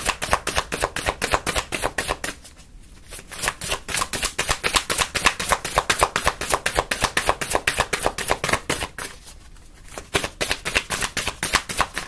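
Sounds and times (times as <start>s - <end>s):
cards being shuffled: 0.1s - 12.0s.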